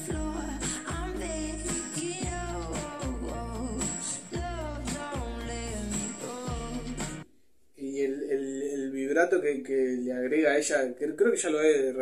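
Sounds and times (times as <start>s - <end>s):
pop ballad backing: 0.0s - 7.2s
woman singing: 0.0s - 7.2s.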